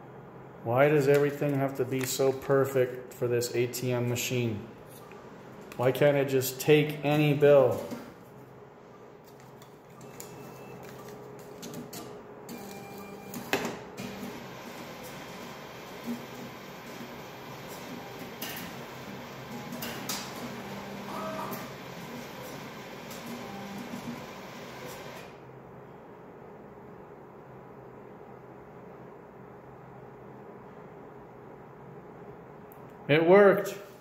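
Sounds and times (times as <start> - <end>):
machine whirring: 12.5 - 25.4.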